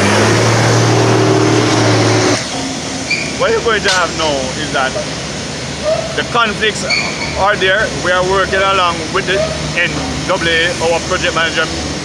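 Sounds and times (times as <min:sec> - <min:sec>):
heavy vehicle engine running: 0:00.0 - 0:12.0
rushing noise: 0:00.0 - 0:12.0.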